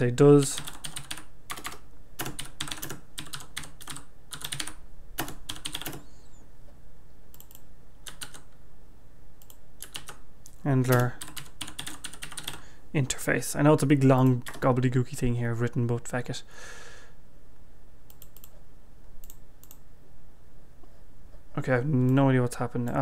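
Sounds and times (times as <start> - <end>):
typing on computer keyboard: 0.6 - 6.0, 7.3 - 8.5, 9.4 - 10.2, 10.9 - 12.6, 14.4 - 14.7.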